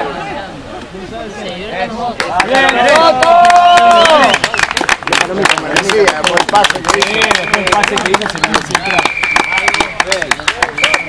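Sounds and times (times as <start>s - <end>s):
spectators talking: 0.0s - 11.0s
hand claps: 2.2s - 11.0s.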